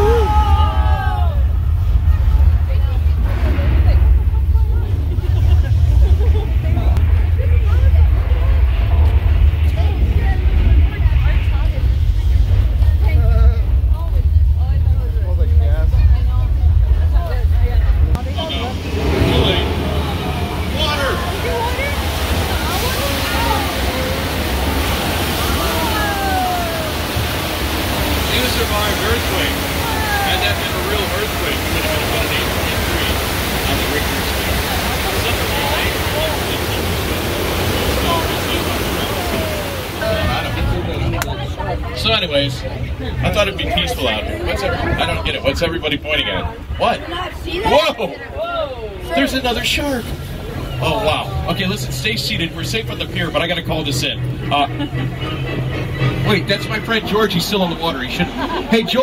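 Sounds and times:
people crying out: 0:00.0 - 0:01.7, 0:22.1 - 0:28.2, 0:29.0 - 0:31.0, 0:38.7 - 0:40.3
rush of flood water: 0:00.0 - 0:16.1, 0:16.7 - 0:53.2
deep heavy rumble: 0:00.0 - 0:59.0.

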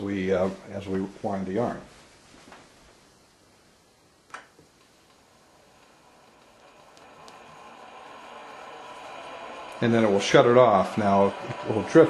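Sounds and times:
faint clicks: 0:04.3 - 0:08.1
skein winder motor humming: 0:04.6 - 0:12.0.

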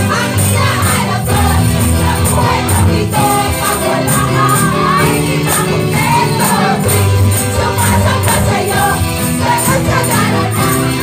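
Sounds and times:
tambourines jingling: 0:00.0 - 0:11.0
women singing a praise song: 0:00.0 - 0:11.0.

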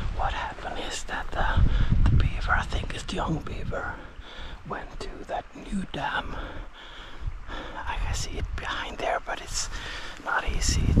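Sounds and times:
wind rumble: 0:00.0 - 0:11.0
man whispering: 0:00.1 - 0:06.8, 0:07.5 - 0:11.0.

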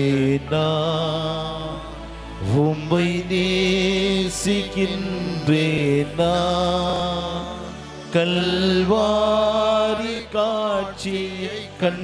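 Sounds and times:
low sustained accompaniment: 0:00.0 - 0:12.0
man singing a devotional chant: 0:00.0 - 0:12.0.

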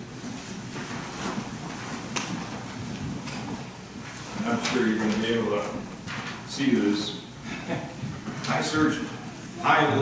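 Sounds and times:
faint rustling and shuffling: 0:00.0 - 0:07.2.

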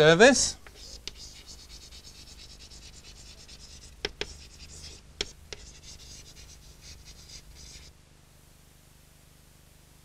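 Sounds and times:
chalk scratching on blackboard: 0:00.6 - 0:07.9
chalk tapping: 0:00.6 - 0:07.9.

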